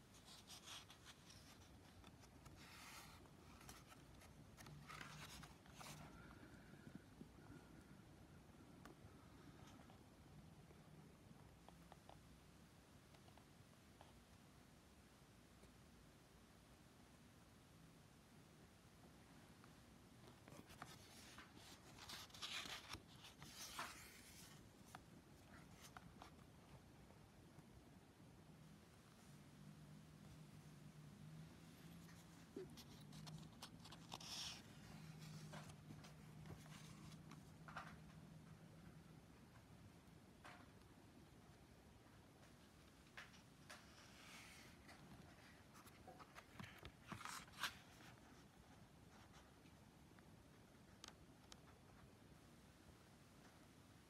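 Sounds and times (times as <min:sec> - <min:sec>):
book page rustling: 0:00.1 - 0:06.4, 0:20.2 - 0:26.5, 0:32.0 - 0:38.0, 0:43.2 - 0:48.5.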